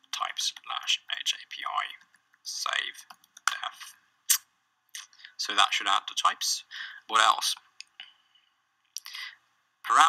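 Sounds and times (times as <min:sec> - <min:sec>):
man speaking: 0:00.0 - 0:04.0, 0:05.0 - 0:08.0, 0:09.0 - 0:10.0.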